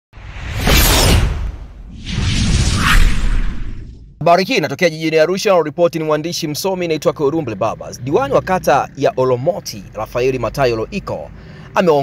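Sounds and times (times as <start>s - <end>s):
deep rumble: 0.2s - 4.2s
whoosh sound effect: 0.2s - 4.2s.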